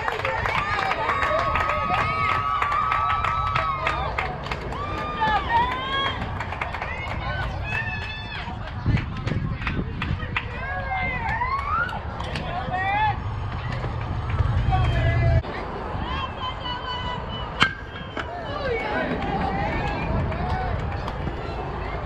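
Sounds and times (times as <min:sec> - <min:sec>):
steady low rumble: 0:04.6 - 0:16.2.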